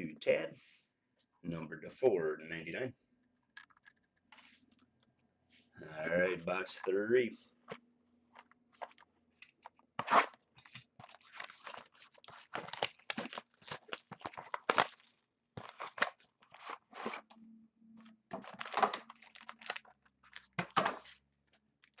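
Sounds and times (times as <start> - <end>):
cardboard packaging crinkling and tearing: 8.4 - 17.4, 18.3 - 21.2.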